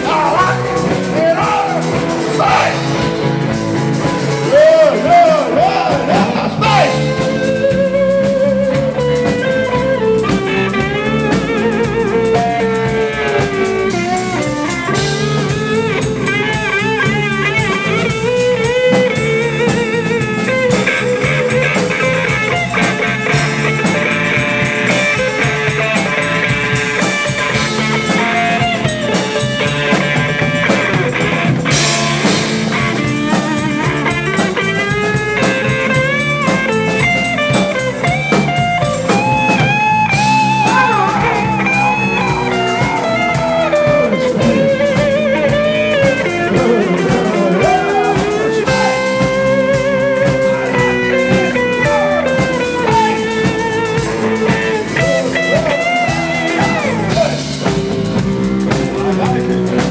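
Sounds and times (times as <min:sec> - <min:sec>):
bass guitar: 0:00.0 - 0:59.9
drum kit: 0:00.0 - 0:59.9
electric guitar lead: 0:00.0 - 0:59.9.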